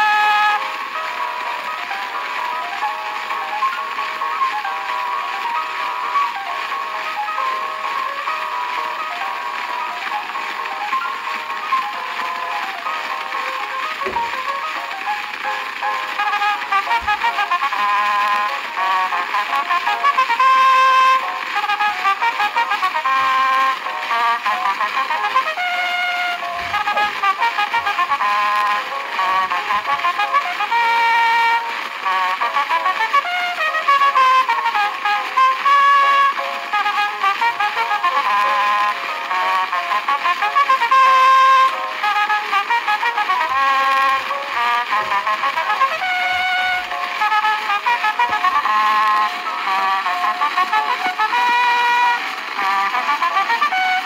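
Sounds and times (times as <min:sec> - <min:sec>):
solo cornet playing a fast polka: 0:00.0 - 0:54.0.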